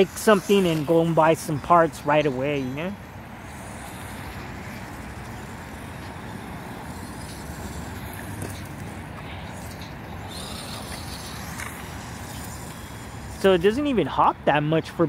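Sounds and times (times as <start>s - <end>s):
distant road traffic rumble: 0.0s - 15.0s.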